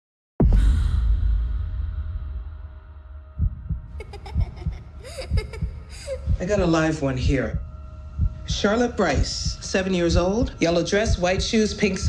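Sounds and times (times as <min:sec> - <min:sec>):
low boom rumble: 0:00.4 - 0:11.6
heartbeat-like low thumps: 0:00.4 - 0:12.0.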